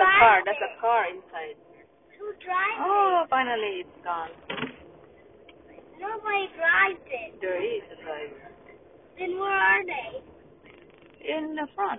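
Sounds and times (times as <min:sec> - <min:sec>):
faint background noise: 0:00.0 - 0:11.9.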